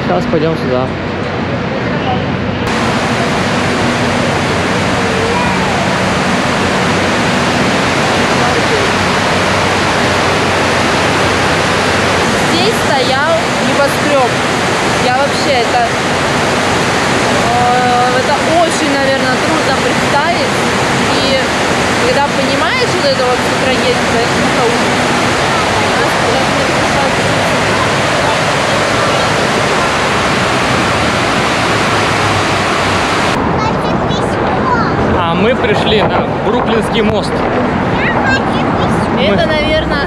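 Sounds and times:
people's voices: 0.0 - 40.0
water cascading down walls: 2.7 - 33.4.

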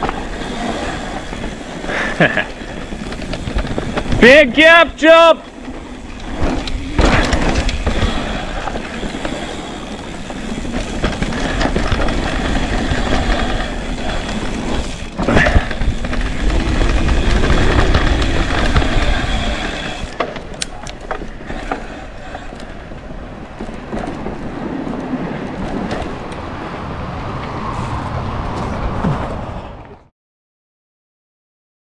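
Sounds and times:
bike frame and drivetrain rattling: 0.0 - 29.6
bike tyres on dirt trail: 0.0 - 30.0.

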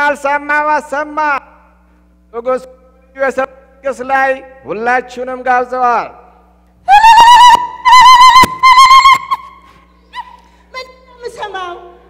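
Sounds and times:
high voice ululating: 6.9 - 9.5.

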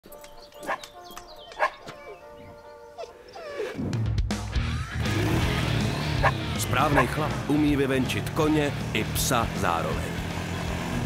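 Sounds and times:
dog barking: 0.6 - 0.8, 1.6 - 2.2, 6.2 - 7.2
music with long held notes: 4.0 - 11.0.

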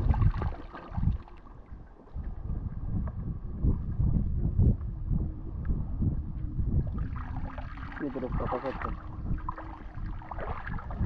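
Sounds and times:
feet wading through shallow water: 0.0 - 2.0, 6.9 - 11.0
wind buffeting microphone: 0.0 - 11.0.

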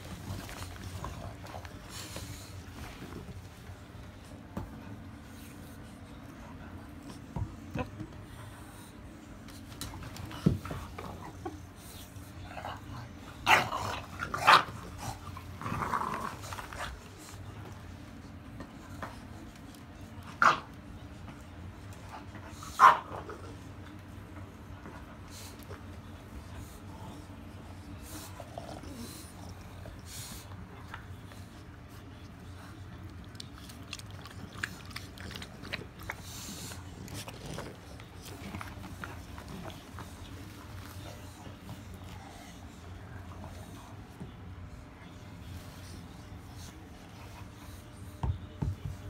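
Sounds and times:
dogs growling: 0.0 - 3.4, 10.2 - 17.4, 26.4 - 31.0, 33.0 - 44.2.

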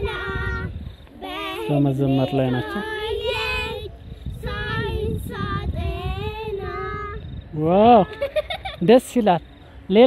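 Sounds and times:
child singing: 0.0 - 7.4
wind on microphone: 0.0 - 8.8.

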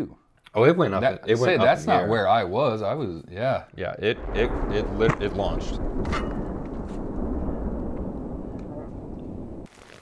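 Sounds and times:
explosion low rumble: 4.2 - 9.7.

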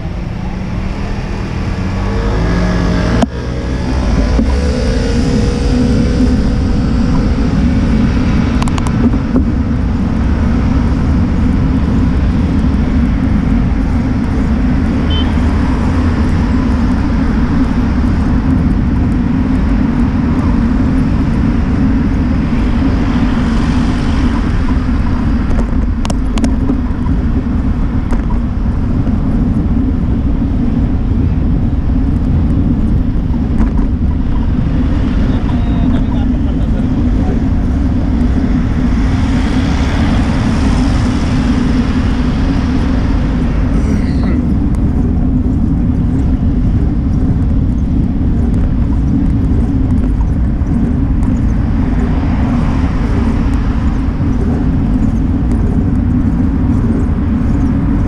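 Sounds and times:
road traffic noise: 0.0 - 58.0
wind noise on microphone: 0.0 - 58.0.

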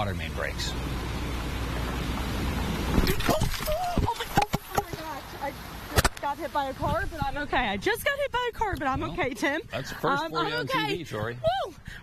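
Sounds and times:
vehicle hitting camera: 0.0 - 7.8
roadside traffic rumble and hiss: 0.0 - 12.0.

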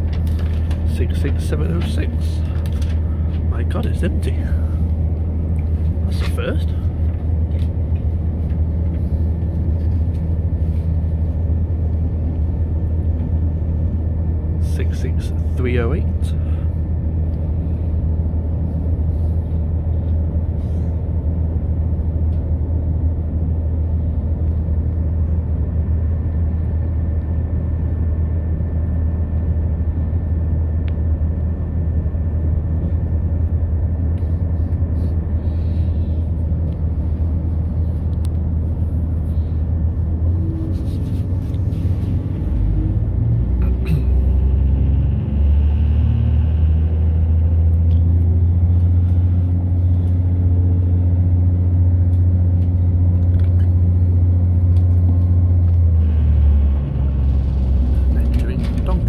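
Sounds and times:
train rumbling: 0.0 - 59.0
train engine notes rising: 1.0 - 59.0.

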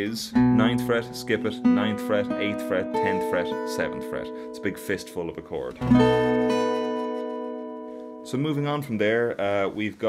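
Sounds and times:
acoustic guitar chord ringing: 0.3 - 8.9.

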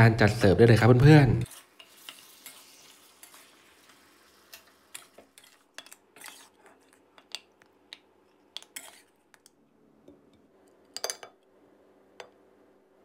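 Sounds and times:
glaze sizzling in a pan: 1.5 - 7.0.

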